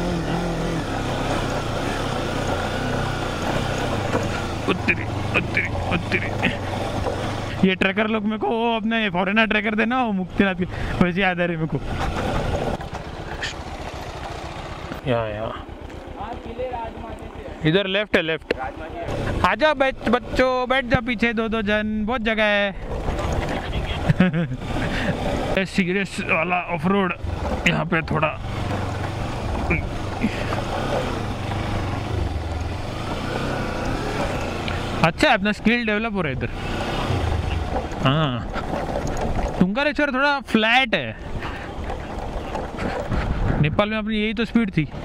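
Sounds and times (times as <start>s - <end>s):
motorcycle engine at low speed: 0.0s - 45.0s
wind and trail noise: 0.0s - 45.0s.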